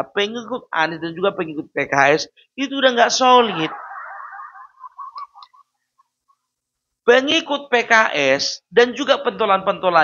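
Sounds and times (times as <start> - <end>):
man's voice echoing: 0.0 - 3.9.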